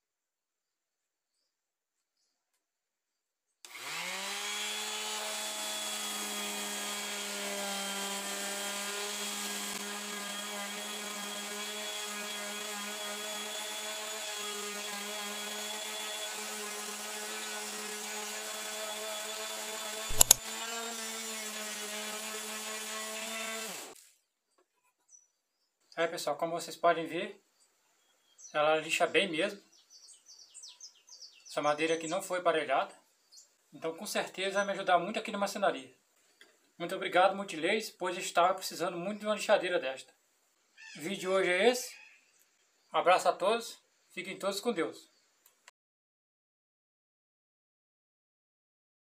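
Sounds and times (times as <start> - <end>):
electric orbital sander humming: 3.7 - 12.3, 15.2 - 20.4
sharp knock: 20.1 - 20.4.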